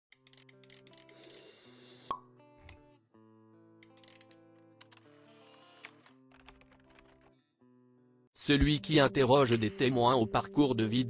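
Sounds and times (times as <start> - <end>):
faint background music: 8.2 - 11.0.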